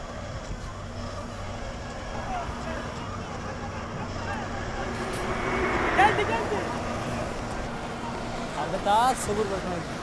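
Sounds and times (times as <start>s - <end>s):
many voices: 0.0s - 10.0s.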